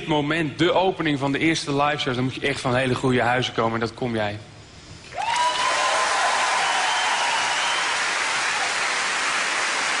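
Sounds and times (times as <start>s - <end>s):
audience applauding: 5.2s - 10.0s
long whistle: 6.8s - 8.0s.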